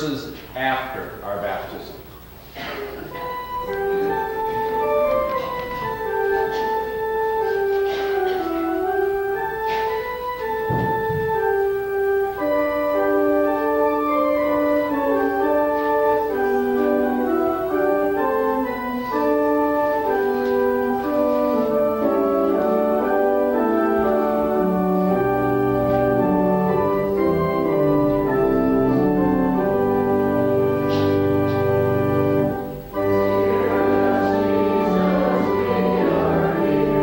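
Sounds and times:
church organ playing a hymn: 0.0s - 37.0s.

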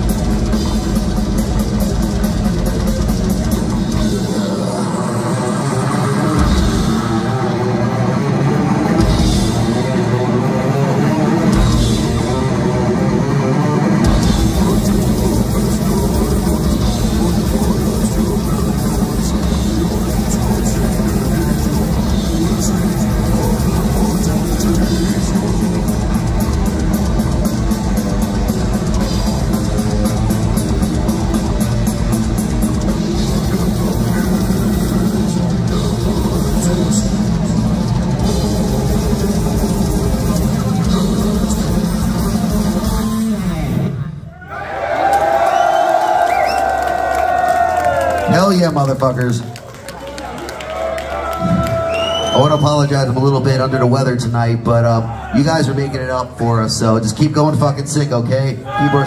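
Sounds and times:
death metal band playing: 0.0s - 49.2s.

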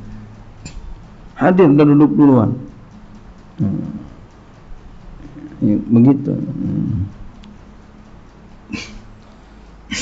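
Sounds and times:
man coughing: 8.7s - 9.1s.

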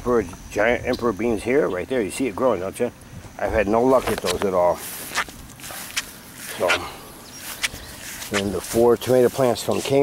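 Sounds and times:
sharp footsteps: 3.9s - 10.0s.

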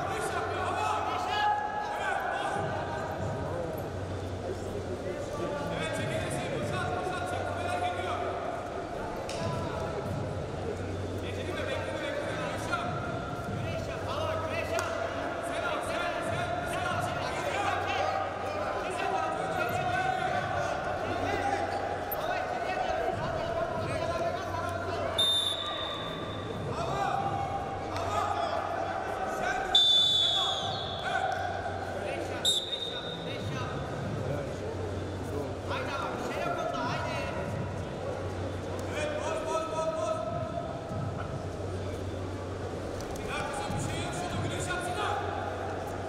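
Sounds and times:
voices calling out in a hall: 0.0s - 46.0s
referee's whistle blast: 25.1s - 26.4s, 29.7s - 31.1s, 32.4s - 33.3s.

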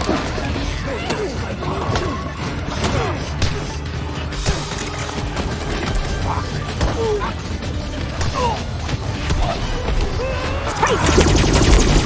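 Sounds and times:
fight scene music: 0.0s - 12.0s.

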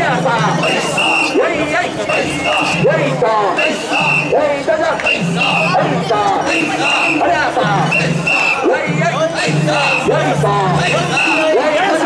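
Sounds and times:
group chanting rhythmically: 0.0s - 12.0s.

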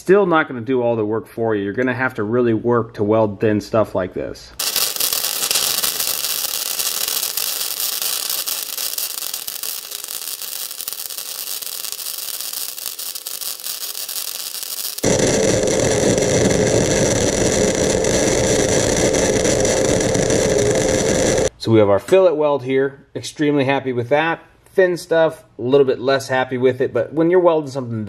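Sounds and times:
crackling hissing welding arc: 4.6s - 21.5s.

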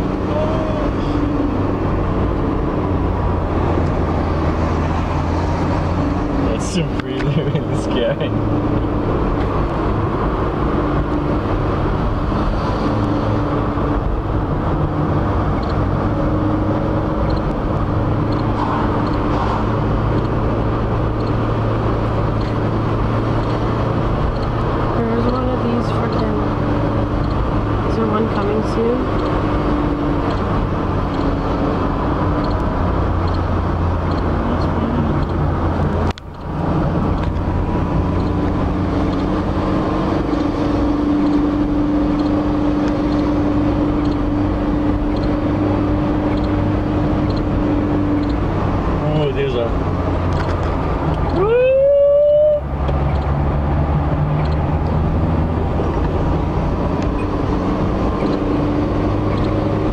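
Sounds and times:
car engine hum inside cabin: 0.0s - 59.9s.

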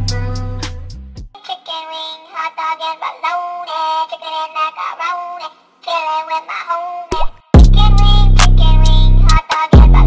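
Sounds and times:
bass-heavy music track: 0.0s - 1.3s, 7.6s - 10.0s.

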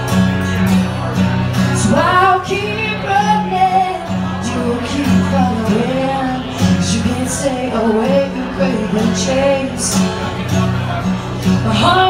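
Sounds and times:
strummed acoustic guitar: 0.0s - 12.0s
woman singing into a microphone: 1.7s - 10.2s, 11.4s - 12.0s.

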